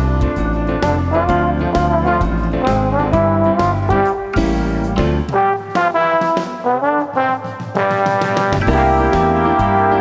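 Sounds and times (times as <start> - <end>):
deep bass line: 0.0 - 6.2, 8.6 - 10.0
trombone melody: 0.0 - 10.0.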